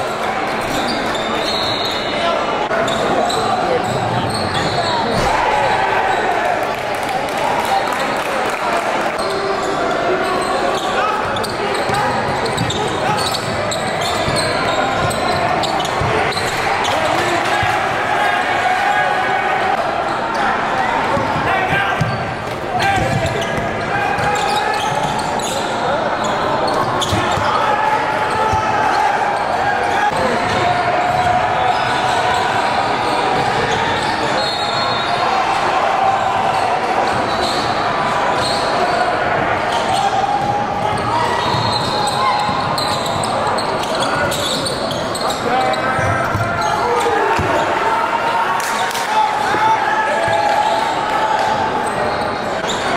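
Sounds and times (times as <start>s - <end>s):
indistinct voices in gym: 0.0s - 52.9s.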